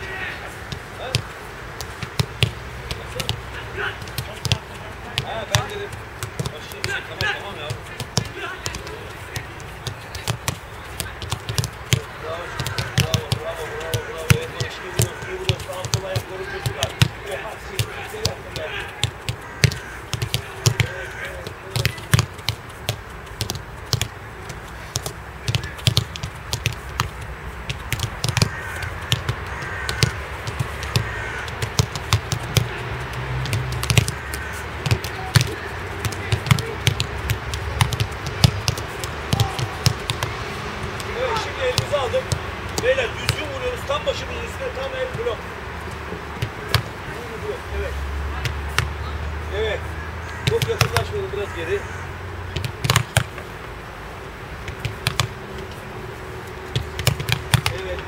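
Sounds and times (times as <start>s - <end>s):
faint voices: 0.0s - 22.8s, 28.2s - 52.8s
footballs kicked thudding on turf: 0.7s - 32.8s, 33.4s - 44.1s, 44.8s - 45.4s, 50.4s - 51.1s, 52.5s - 53.4s, 54.6s - 55.4s, 56.7s - 58.0s.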